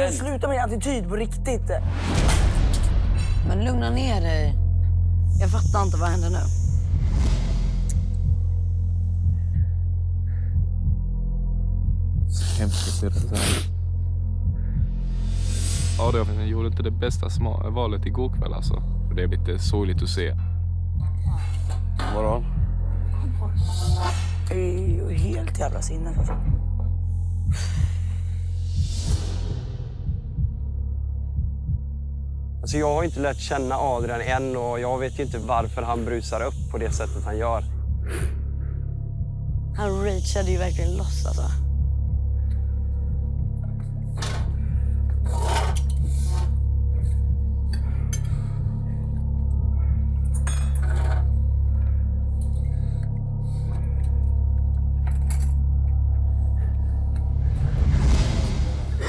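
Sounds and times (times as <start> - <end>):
low droning score: 0.0 - 59.0.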